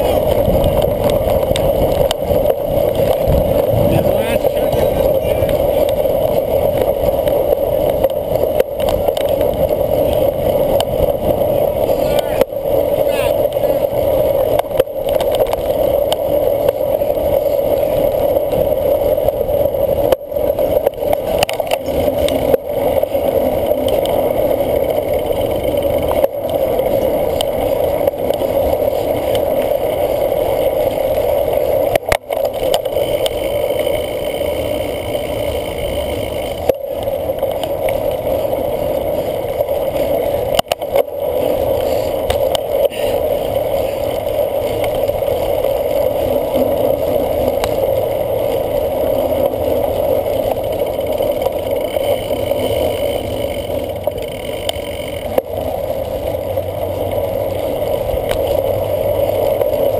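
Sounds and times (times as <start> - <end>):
bike tyres rolling over grass: 0.0 - 59.9
muffled wind rush: 0.0 - 59.9.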